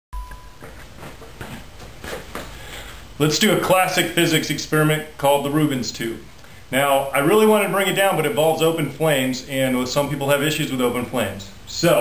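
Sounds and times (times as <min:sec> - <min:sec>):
high beep: 0:00.1 - 0:00.6.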